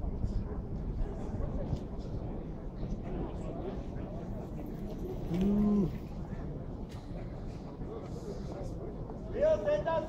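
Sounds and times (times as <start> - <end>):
murmur of walking crowd: 0.0 - 10.0
low held voice-like call: 5.2 - 6.1.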